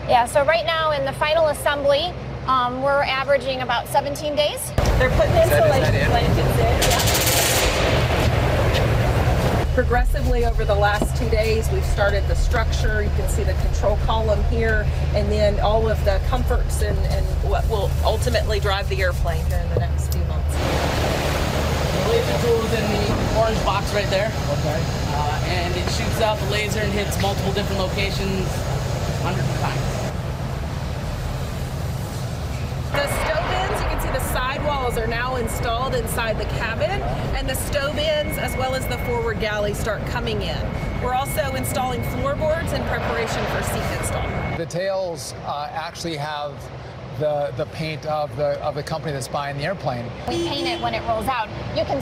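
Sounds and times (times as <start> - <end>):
woman talking: 0.0 - 7.1, 9.7 - 20.6, 32.9 - 44.4, 50.3 - 52.0
low hum and hiss of hall: 0.0 - 52.0
factory floor din: 4.8 - 44.6.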